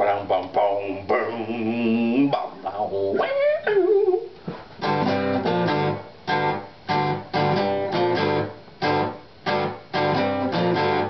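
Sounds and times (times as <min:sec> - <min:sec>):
man singing: 0:00.0 - 0:04.3
strummed acoustic guitars: 0:04.5 - 0:11.0.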